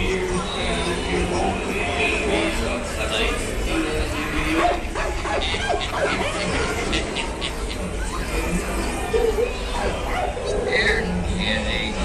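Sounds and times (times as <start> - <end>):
recorded voices: 0.0 - 12.0.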